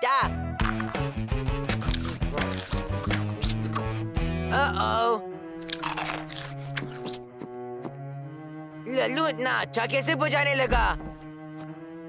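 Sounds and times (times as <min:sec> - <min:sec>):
cartoon background music: 0:00.0 - 0:12.0
crunching munching of snacks: 0:00.6 - 0:01.1, 0:01.7 - 0:04.0, 0:05.6 - 0:07.2.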